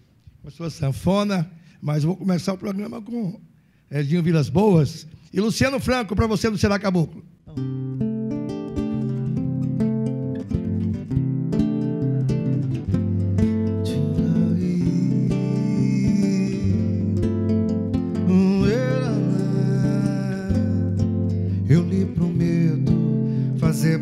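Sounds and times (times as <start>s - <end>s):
acoustic guitars playing: 7.4s - 24.0s.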